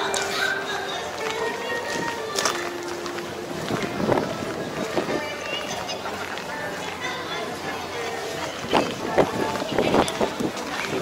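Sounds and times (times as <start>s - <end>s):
background voices: 0.0s - 11.0s
music: 0.0s - 11.0s.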